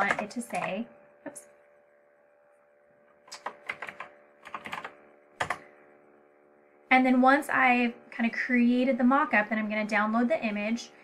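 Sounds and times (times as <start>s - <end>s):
keyboard keys clicking: 3.2s - 5.6s.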